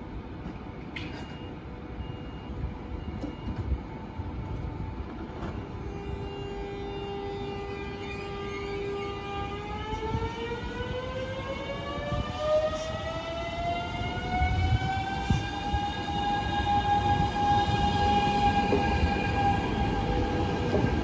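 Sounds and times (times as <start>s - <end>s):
train rumble: 2.7s - 21.0s.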